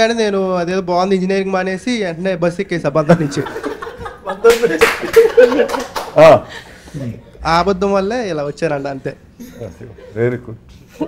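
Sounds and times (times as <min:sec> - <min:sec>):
group laughing: 0:03.0 - 0:07.4, 0:08.7 - 0:11.0.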